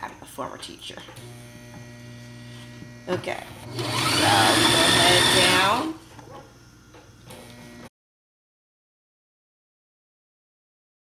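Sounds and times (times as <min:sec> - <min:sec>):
low electrical hum: 0:00.0 - 0:07.9.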